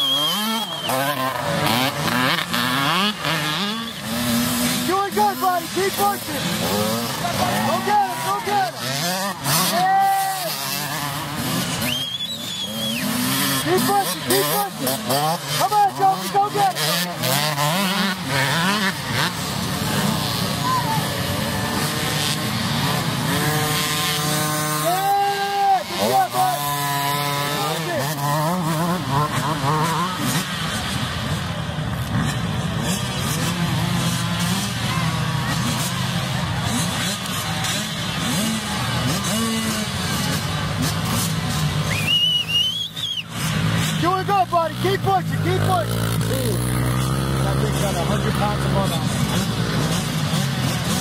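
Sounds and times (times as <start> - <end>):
dirt bike engines revving: 0.0 - 51.0
people shouting: 4.8 - 11.2, 20.4 - 21.3, 24.6 - 26.7.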